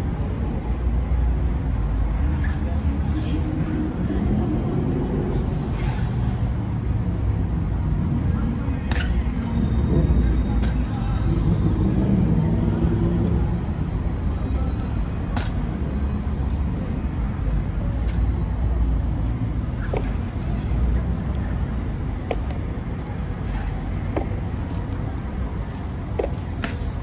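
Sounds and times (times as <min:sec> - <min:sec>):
low rumble of traffic: 0:00.0 - 0:27.0.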